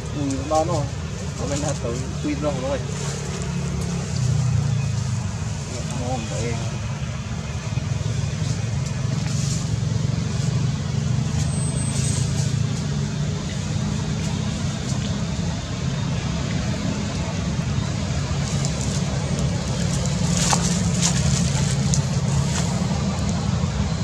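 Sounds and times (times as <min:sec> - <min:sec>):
low motor drone: 0:12.0 - 0:24.0.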